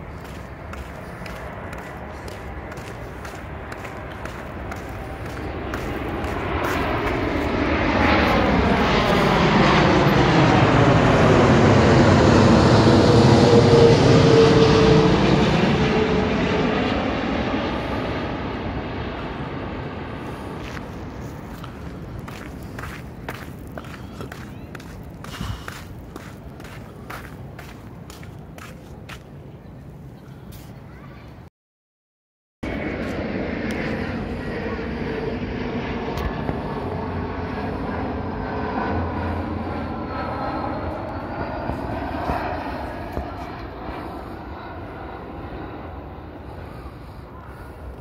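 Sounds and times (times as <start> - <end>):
footsteps of person walking: 0.0 - 8.4, 20.6 - 29.4, 32.8 - 34.0
jet airliner rumble: 0.0 - 31.5, 32.6 - 48.0.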